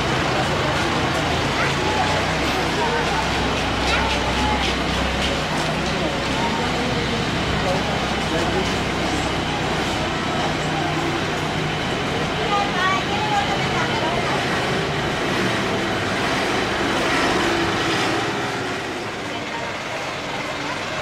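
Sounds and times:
traffic noise: 0.0 - 21.0
voices of passers-by: 0.0 - 21.0.

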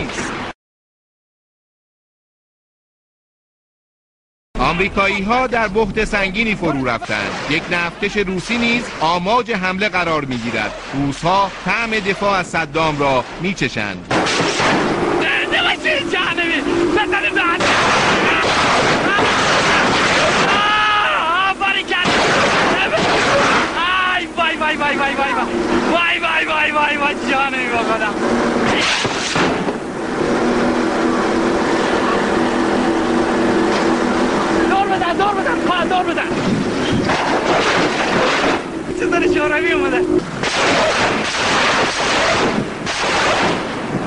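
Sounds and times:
boat engine running: 4.6 - 13.6, 14.6 - 19.2, 20.4 - 41.3
water rushing: 4.7 - 44.0
heavy gunfire: 14.1 - 15.2, 17.5 - 21.0, 21.9 - 23.8, 28.6 - 29.8, 37.1 - 38.7, 40.3 - 44.0
men shouting: 15.0 - 22.1, 22.7 - 28.8
wind rushing: 35.4 - 44.0.

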